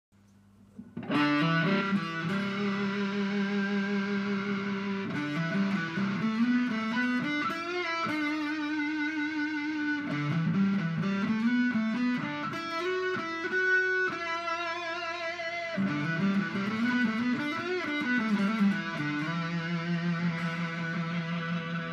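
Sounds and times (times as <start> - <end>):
distorted electric guitar lead: 0.8 - 21.9.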